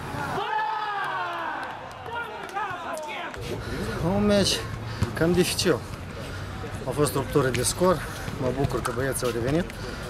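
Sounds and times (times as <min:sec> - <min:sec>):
pitch-side background noise: 0:00.0 - 0:10.0.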